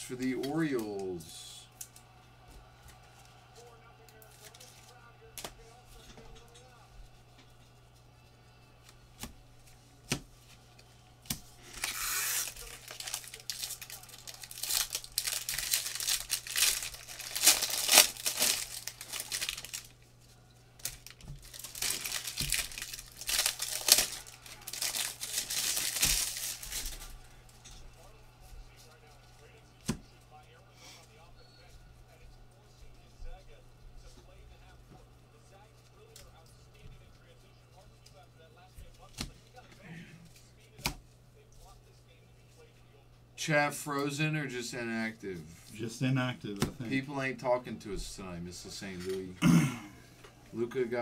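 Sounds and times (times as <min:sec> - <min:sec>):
foil wrappers tearing and crinkling: 0:11.6 - 0:20.0, 0:20.8 - 0:27.2.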